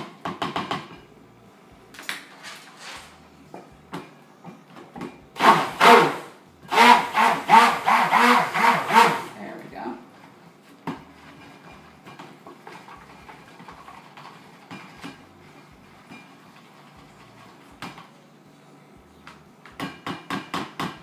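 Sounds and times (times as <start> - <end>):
blender knocking in cup: 5.4 - 9.3
stick blender pulsing: 5.4 - 9.4.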